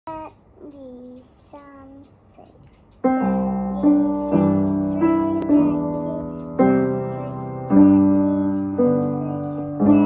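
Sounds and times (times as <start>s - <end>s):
piano chords: 2.9s - 10.0s.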